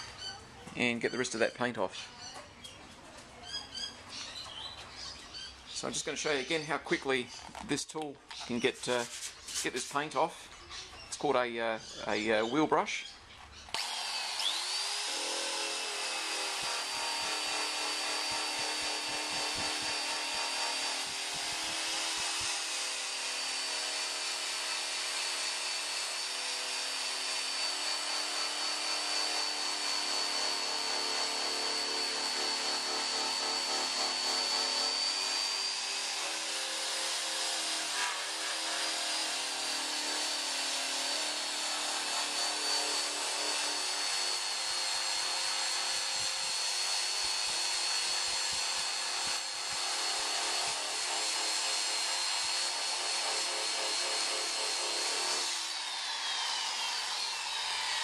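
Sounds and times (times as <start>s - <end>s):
power tool high-pitched whine: 13.7s - 58.0s
wire wheel rasping on metal: 13.8s - 23.9s, 27.0s - 51.3s.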